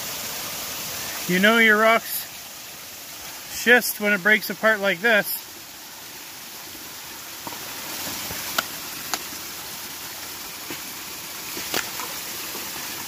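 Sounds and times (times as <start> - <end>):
creek rushing: 0.0 - 13.0.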